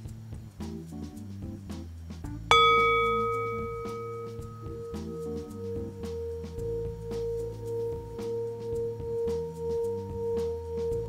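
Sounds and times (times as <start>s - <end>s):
singing bowl ringing: 2.5s - 11.0s.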